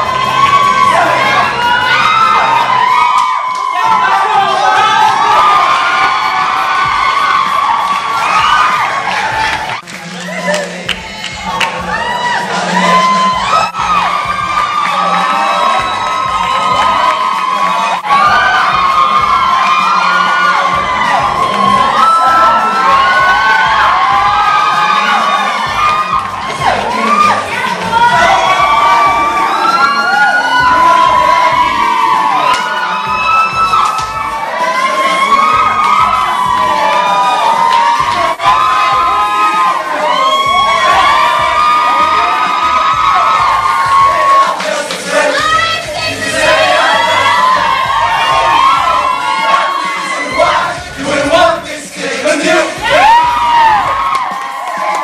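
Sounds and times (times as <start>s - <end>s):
crowd of young women screaming: 0.0s - 10.7s, 11.4s - 51.3s, 52.6s - 55.0s.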